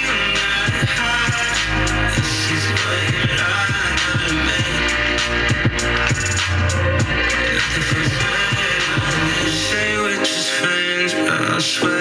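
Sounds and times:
pop music from small speakers: 0:00.0 - 0:12.0.

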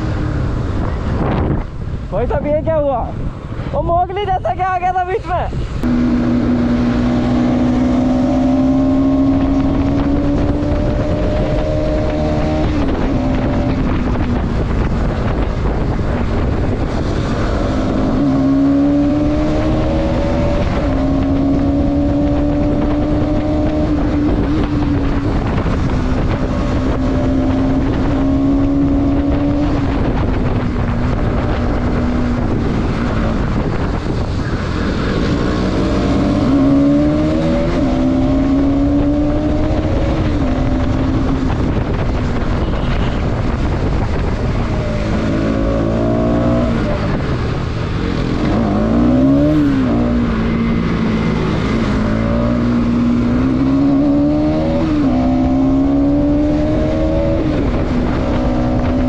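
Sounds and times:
wind rushing over microphone: 0:00.0 - 0:59.0
motorcycle engine shifting gears: 0:05.6 - 0:59.0.

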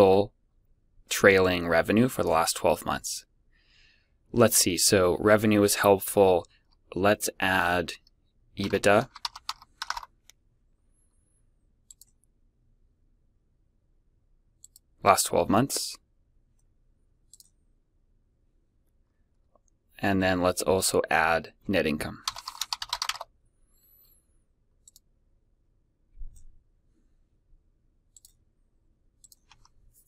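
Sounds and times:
computer keyboard typing: 0:08.6 - 0:10.1, 0:22.2 - 0:23.3.

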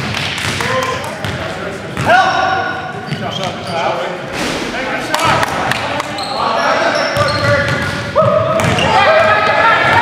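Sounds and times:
sneakers squeaking: 0:03.0 - 0:04.1, 0:05.2 - 0:09.2.

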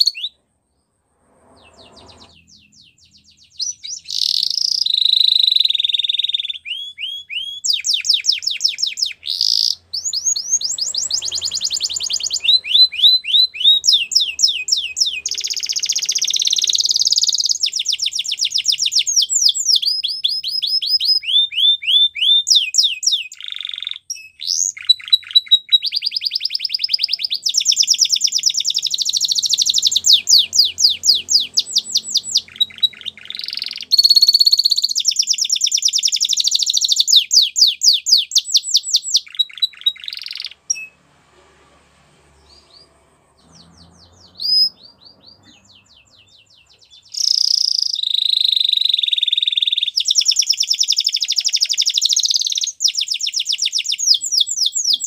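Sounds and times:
canary singing trills: 0:00.0 - 0:00.4, 0:01.4 - 0:41.0, 0:42.3 - 0:55.0.

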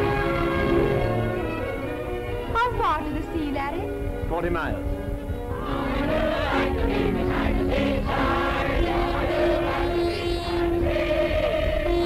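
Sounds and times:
crowd singing together: 0:05.6 - 0:12.0.

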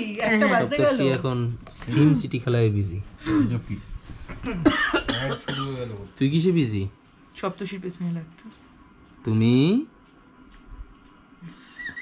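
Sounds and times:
person coughing: 0:04.4 - 0:05.8.

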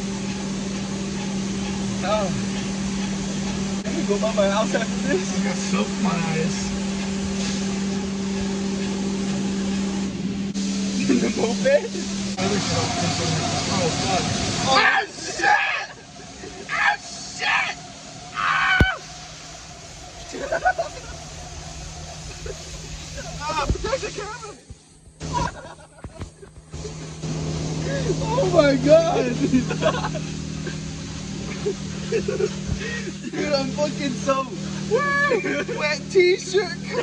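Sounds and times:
car wash machinery rushing: 0:00.0 - 0:37.0
constant low hum: 0:00.0 - 0:37.0.

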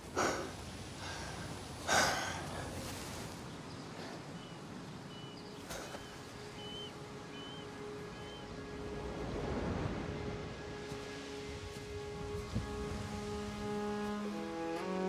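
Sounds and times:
sea surf: 0:00.0 - 0:15.0
soft orchestral notes: 0:05.4 - 0:15.0.

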